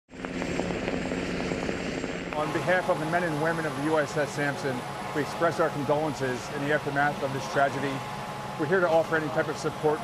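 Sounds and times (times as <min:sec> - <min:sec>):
helicopter engine and rotor drone: 0:00.1 - 0:10.0.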